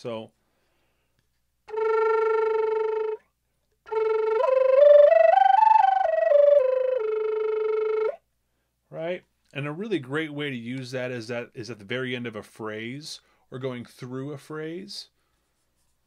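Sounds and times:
flutter-tongued flute: 0:01.7 - 0:08.2.

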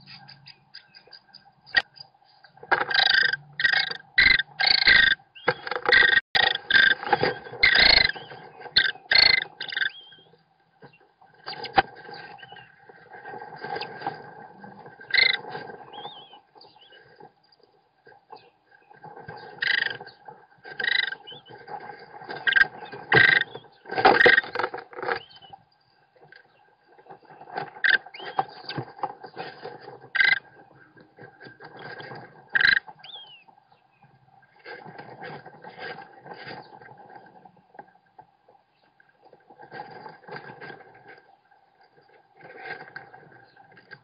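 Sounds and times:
nestlings calling: 0:00.0 - 0:13.9, 0:15.0 - 0:17.3, 0:18.3 - 0:25.6, 0:26.5 - 0:29.6, 0:32.5 - 0:33.5.

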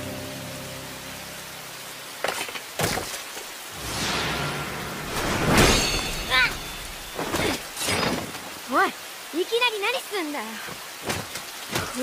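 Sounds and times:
rain hiss: 0:00.0 - 0:12.0.

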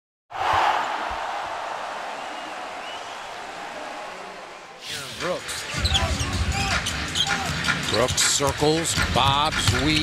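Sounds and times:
arena crowd noise: 0:00.3 - 0:10.0.

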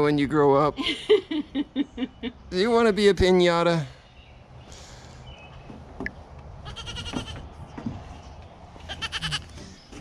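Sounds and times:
goat kid bleating: 0:06.6 - 0:07.5, 0:08.9 - 0:09.5.

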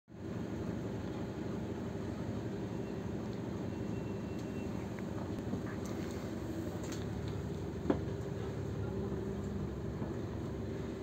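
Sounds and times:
bus diesel engine idling: 0:00.1 - 0:11.0.

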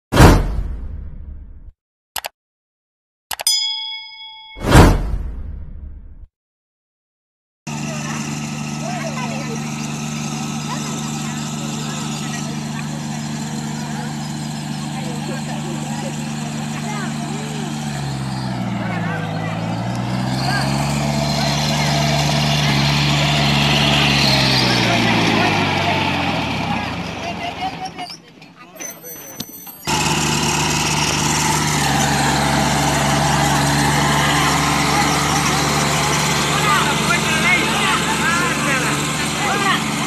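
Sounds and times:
tractor diesel engine labouring: 0:07.7 - 0:40.0.

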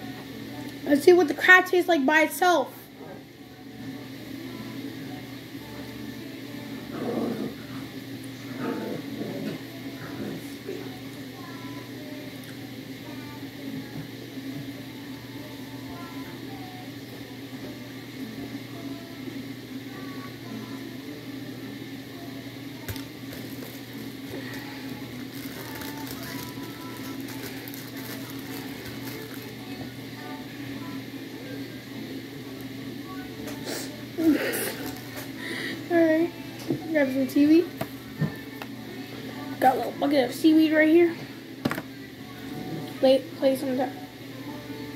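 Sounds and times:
faint background talk or music: 0:00.0 - 0:44.9
low room hum: 0:00.0 - 0:44.9.

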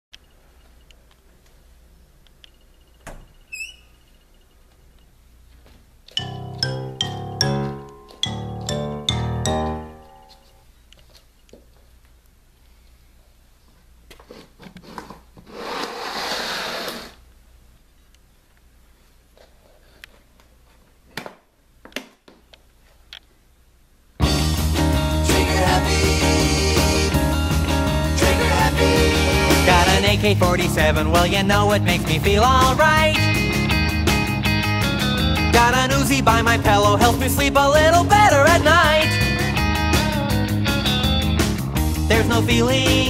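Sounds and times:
door hinge squeak: 0:03.0 - 0:04.3
case scraping across wooden floor: 0:14.3 - 0:17.2.

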